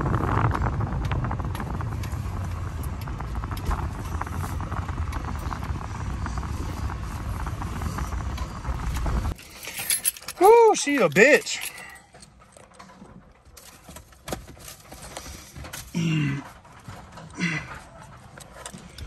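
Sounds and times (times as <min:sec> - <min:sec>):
car engine rumbling: 0:00.0 - 0:19.0.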